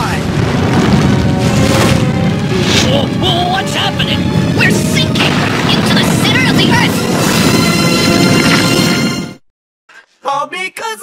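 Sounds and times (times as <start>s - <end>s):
low rumble: 0.0s - 9.4s
background music: 2.0s - 9.4s.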